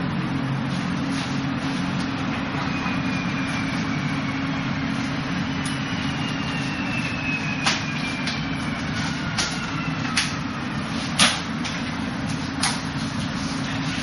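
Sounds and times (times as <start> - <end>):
sharp slaps of forearms and hands: 11.2 - 11.5, 12.6 - 12.9.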